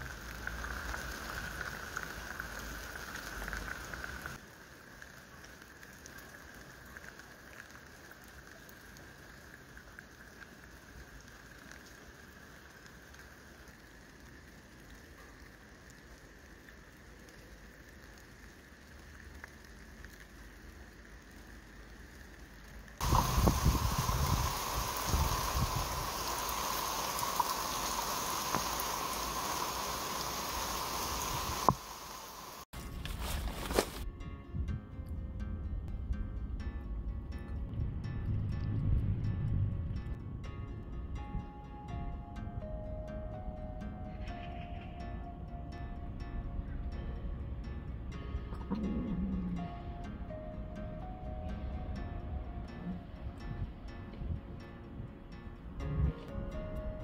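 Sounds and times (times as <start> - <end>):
rain pouring: 0.0 - 34.1
low rumbling: 34.4 - 43.6.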